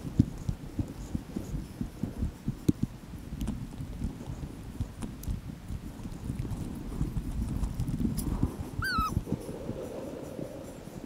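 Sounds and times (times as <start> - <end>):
wind buffeting microphone: 0.0 - 11.0
high-pitched whining call: 8.8 - 9.2.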